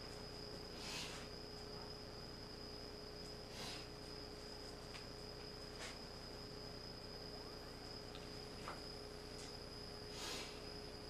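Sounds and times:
soft rustle: 3.5 - 6.2.

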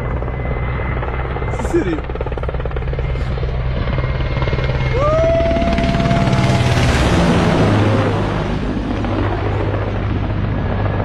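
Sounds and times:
helicopter rotor beat: 0.0 - 11.0.

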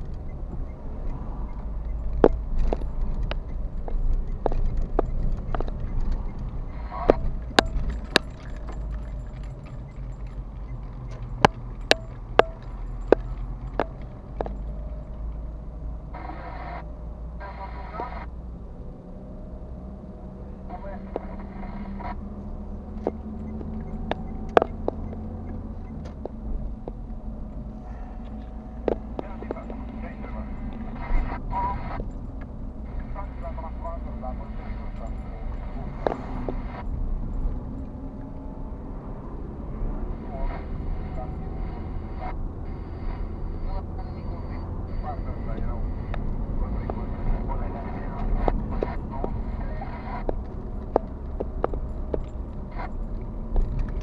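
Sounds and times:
car engine and tyre rumble: 0.0 - 54.0
knocks and rattles: 1.9 - 15.4.

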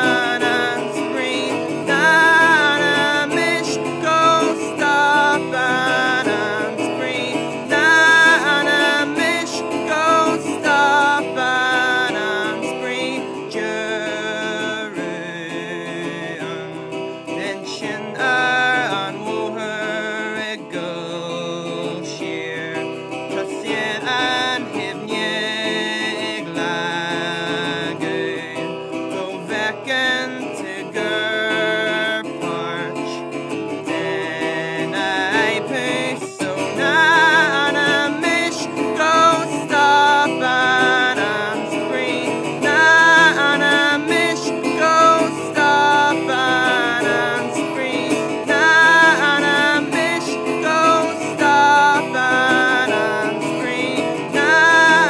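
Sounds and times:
acoustic guitar strummed: 0.0 - 55.0
man singing: 0.0 - 55.0.

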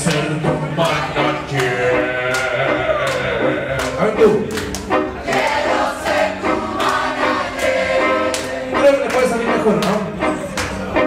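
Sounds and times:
crowd singing together: 0.5 - 4.0, 5.0 - 8.8.

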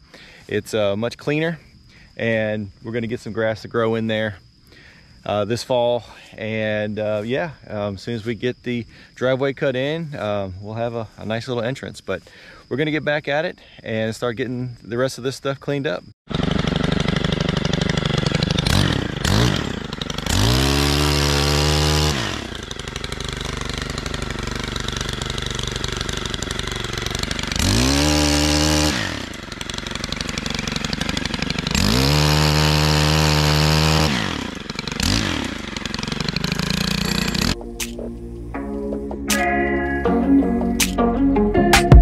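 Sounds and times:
pole saw engine revving: 16.3 - 38.0.

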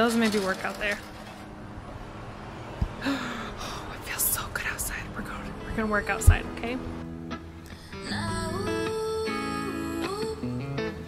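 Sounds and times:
woman whispering: 3.8 - 5.5.

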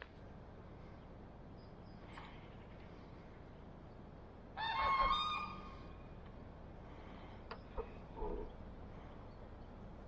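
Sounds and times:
faint steady background noise: 0.0 - 10.0.

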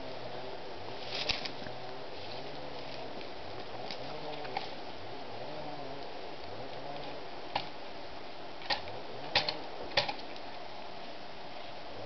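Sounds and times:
faint hiss: 0.0 - 12.0.

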